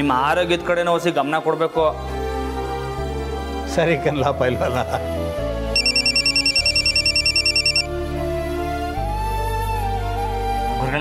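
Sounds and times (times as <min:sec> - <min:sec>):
soft background music: 0:00.0 - 0:11.0
electronic telephone ring: 0:05.8 - 0:07.9.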